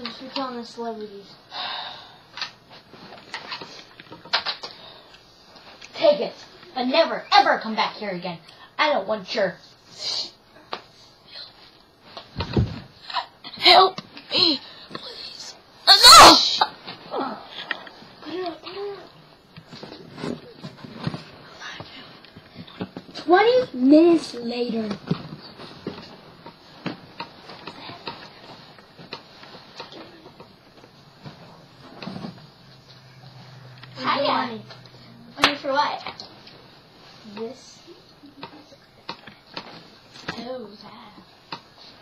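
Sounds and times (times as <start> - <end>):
handling knocks and rustles: 12.0 - 13.0.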